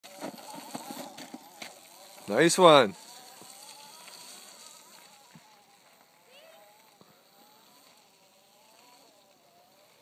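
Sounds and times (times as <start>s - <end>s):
electric motor whine: 0.0s - 10.0s.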